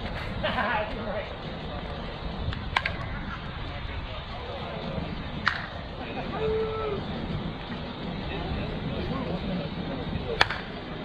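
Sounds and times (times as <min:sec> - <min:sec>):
faint background voices: 0:00.3 - 0:11.0
bat striking ball: 0:10.4 - 0:10.7.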